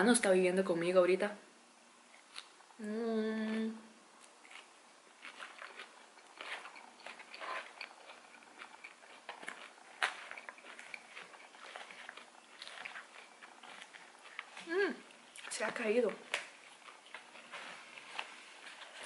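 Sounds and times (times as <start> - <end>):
chewing salad: 3.4 - 19.0.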